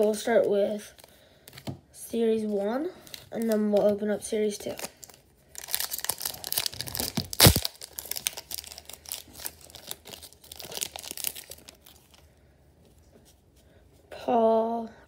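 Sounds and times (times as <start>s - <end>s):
foil wrapper crinkling and tearing: 4.6s - 12.3s.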